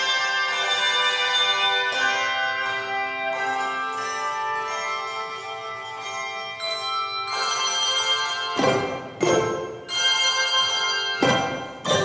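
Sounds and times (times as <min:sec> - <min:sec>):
handbell choir ringing chords: 0:00.0 - 0:12.0.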